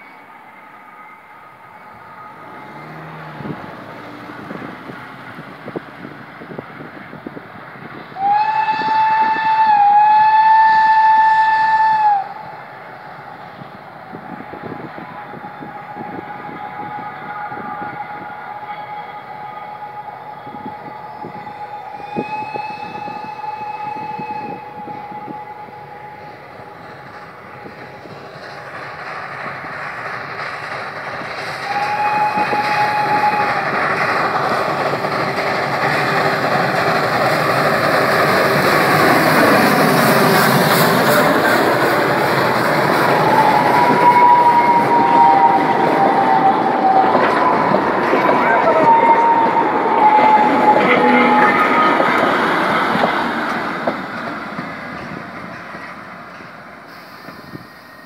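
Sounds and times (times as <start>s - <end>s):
steam locomotive running: 0.0s - 58.0s
steam whistle blasts: 8.2s - 12.6s, 14.5s - 27.0s, 31.6s - 34.4s, 42.9s - 53.2s.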